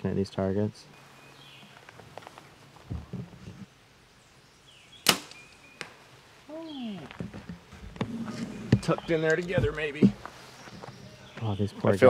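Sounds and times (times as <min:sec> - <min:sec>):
arrow hitting foam target: 0:05.0 - 0:05.4
bow string release crack: 0:05.0 - 0:06.0.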